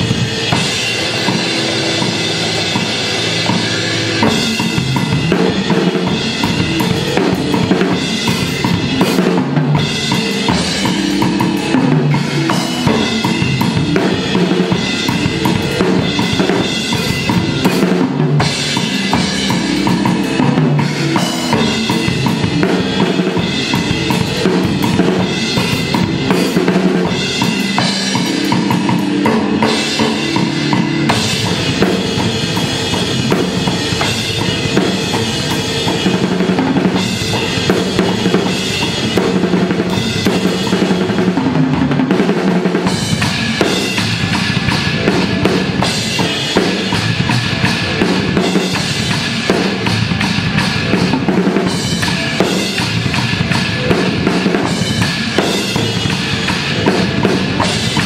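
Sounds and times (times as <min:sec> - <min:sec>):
fast metal drumming: 0:00.0 - 0:58.0.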